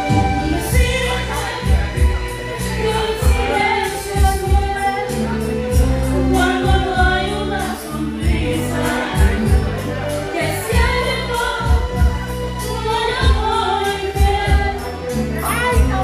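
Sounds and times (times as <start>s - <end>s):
karaoke backing track: 0.0s - 16.0s
woman singing into microphone: 0.0s - 16.0s.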